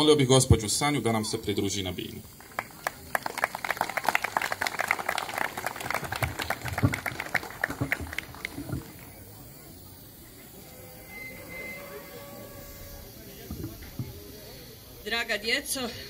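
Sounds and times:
audience applauding: 2.2s - 9.2s.

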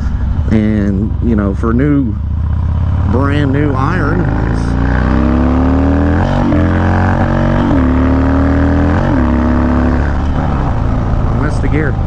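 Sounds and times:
motorcycle engine accelerating: 0.0s - 12.0s.

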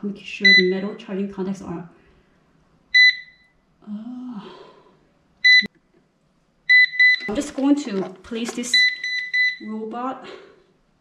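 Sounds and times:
robot vacuum beeps: 6.7s - 7.6s, 8.6s - 9.6s.

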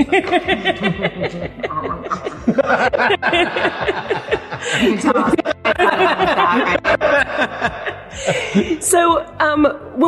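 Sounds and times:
people laughing: 0.0s - 8.9s
breathy chuckles: 0.8s - 4.8s.

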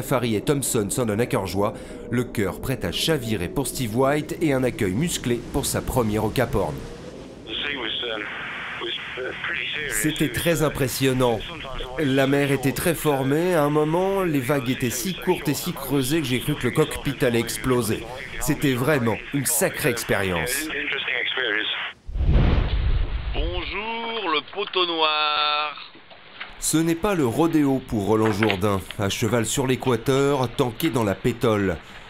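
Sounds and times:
man speaking over phone line: 0.0s - 6.8s, 7.4s - 22.0s, 23.4s - 25.9s, 26.6s - 31.9s
wind buffeting microphone: 1.2s - 8.0s.

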